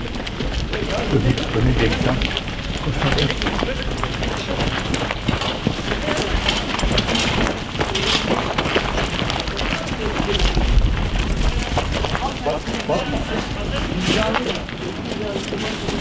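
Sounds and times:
footsteps on gravel road: 0.0s - 16.0s.

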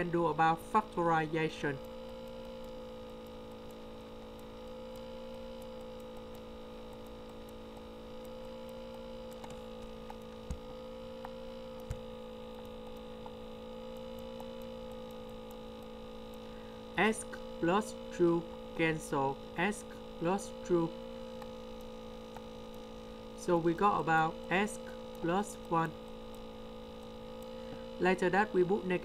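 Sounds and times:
electrical hum: 0.0s - 29.0s
faint clicks: 1.8s - 16.5s.

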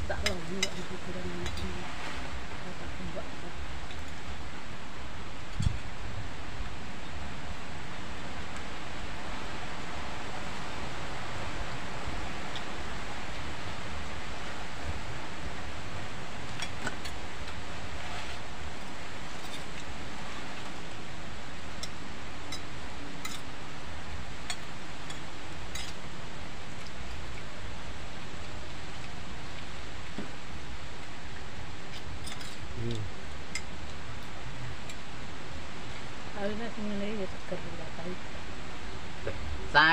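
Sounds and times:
outdoor background hiss: 0.0s - 39.9s.

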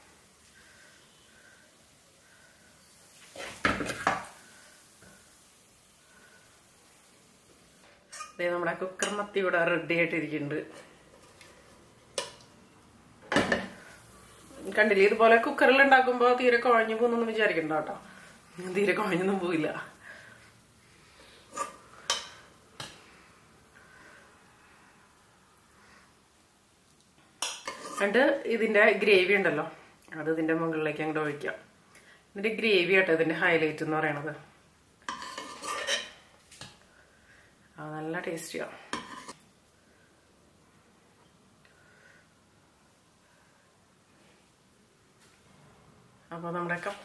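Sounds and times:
spoon scraping and knocking on pot: 27.4s - 28.2s, 35.1s - 36.2s, 38.9s - 39.4s.

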